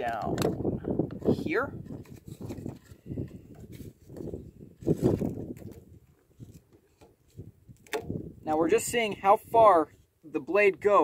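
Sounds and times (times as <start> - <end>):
rope and cardboard rustling: 1.2 - 8.6.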